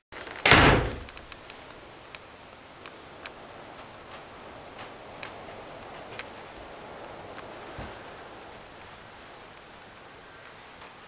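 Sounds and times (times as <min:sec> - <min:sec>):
faint light clicks: 0:01.0 - 0:08.1.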